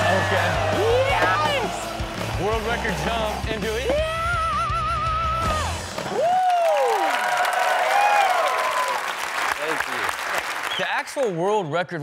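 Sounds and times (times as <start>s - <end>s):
rock music: 0.0s - 6.1s
audience applauding and cheering: 0.0s - 11.4s.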